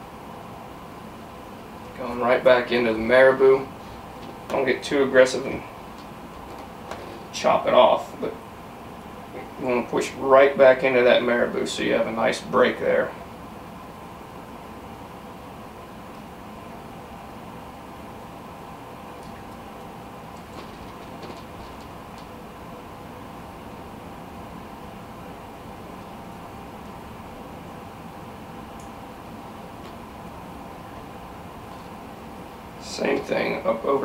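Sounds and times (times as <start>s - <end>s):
room hum with faint tone: 0.0s - 34.0s.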